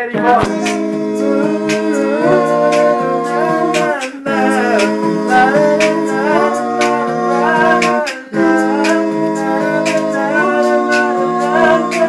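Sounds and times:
male vocal group humming in harmony: 0.0s - 12.0s.

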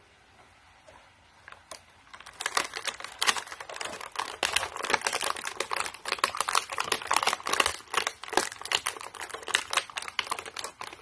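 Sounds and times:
plastic tray crackling: 1.4s - 11.0s.

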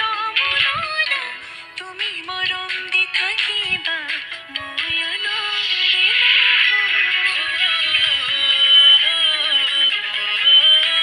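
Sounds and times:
song with singing voice: 0.0s - 11.0s.

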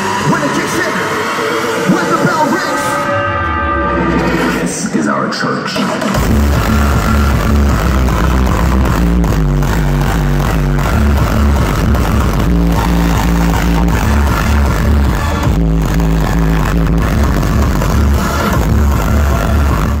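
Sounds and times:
loud hardstyle dance music: 0.0s - 20.0s
heavy kick and bass pattern: 5.8s - 20.0s.

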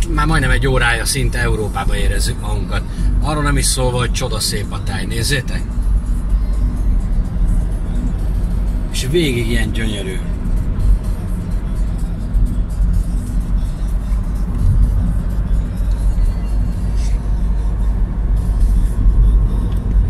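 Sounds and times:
car tyres and engine rumble: 0.0s - 20.0s.

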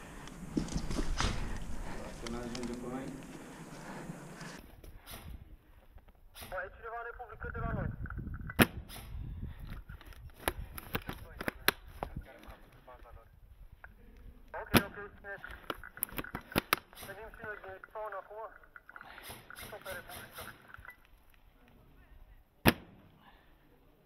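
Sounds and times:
airsoft gun sharp cracks: 22.6s - 23.0s.

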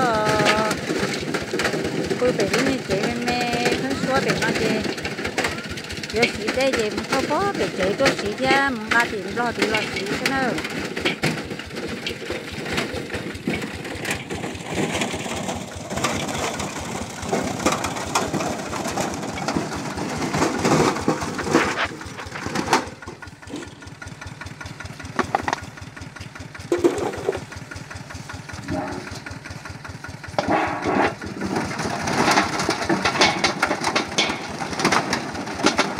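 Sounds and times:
grinder crunching: 0.0s - 24.2s, 24.9s - 35.9s
small engine running: 0.0s - 35.9s.

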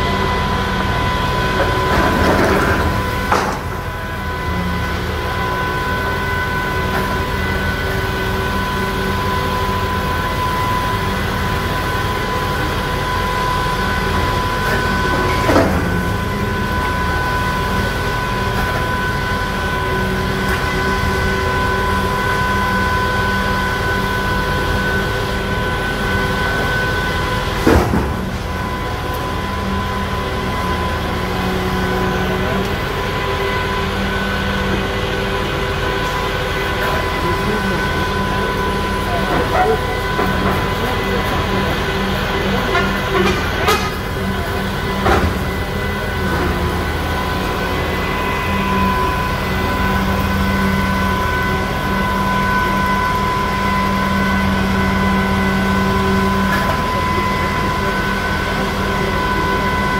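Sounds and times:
excavator engine humming and whining: 0.0s - 59.9s.

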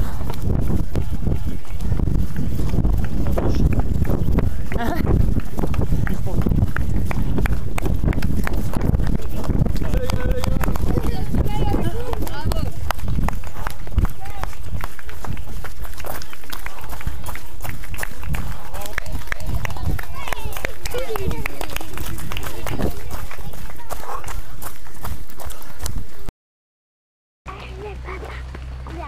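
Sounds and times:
spectators' voices: 0.0s - 24.7s
running footsteps on gravel: 0.0s - 26.3s, 27.5s - 29.0s
running footsteps on wooden boardwalk: 0.0s - 26.3s, 27.5s - 29.0s.

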